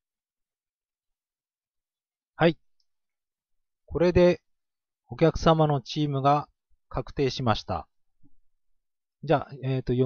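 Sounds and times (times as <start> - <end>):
man speaking: 2.4 - 2.7, 3.9 - 4.5, 5.1 - 7.9, 9.2 - 10.0.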